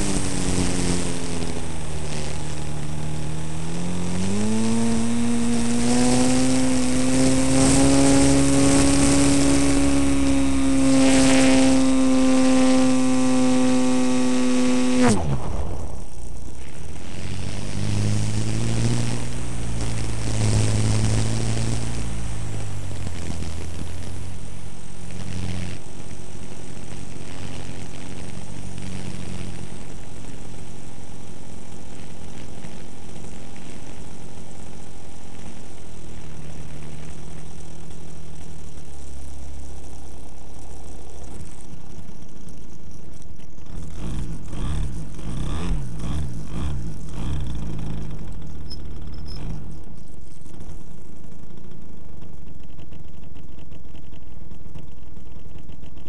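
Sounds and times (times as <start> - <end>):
model plane engine: 0.0 - 56.0.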